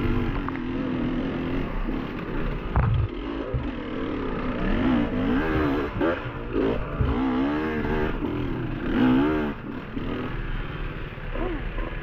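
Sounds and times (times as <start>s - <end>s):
dirt bike engine at low revs: 0.0s - 12.0s.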